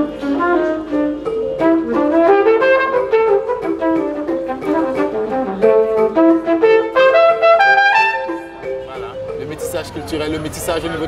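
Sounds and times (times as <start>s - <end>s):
jazz trumpet melody: 0.0s - 9.4s
wooden xylophone: 0.0s - 10.8s.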